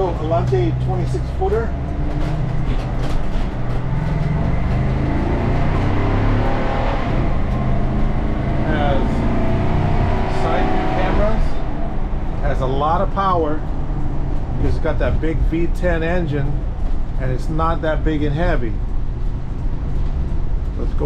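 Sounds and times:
motorhome engine accelerating: 0.0 - 21.0.

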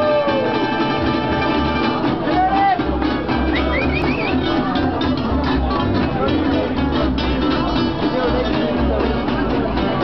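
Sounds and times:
acoustic guitars playing swing: 0.0 - 10.0
double bass: 0.0 - 10.0.

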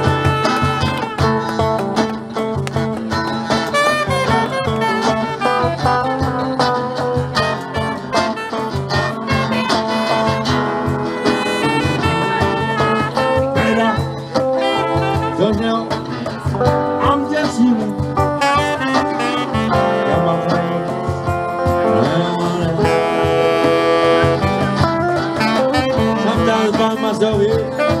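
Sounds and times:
acoustic guitar: 0.0 - 28.0
cajon beat: 0.0 - 28.0
electric guitar: 0.0 - 28.0.

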